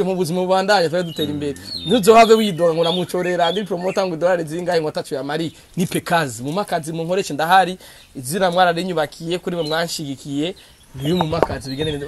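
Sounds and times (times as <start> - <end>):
man chanting sing-song: 1.1 - 2.6.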